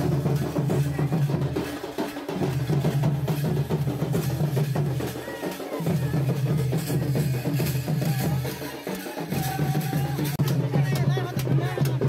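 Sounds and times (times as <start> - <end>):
folk drums beaten: 0.0 - 12.0.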